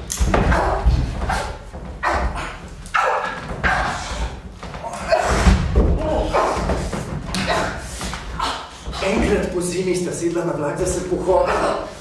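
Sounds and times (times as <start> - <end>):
thuds of people grappling: 0.0 - 9.6.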